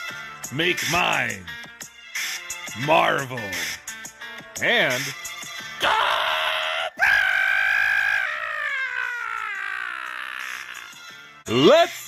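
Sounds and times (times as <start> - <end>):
long vocal yell: 5.8 - 10.9.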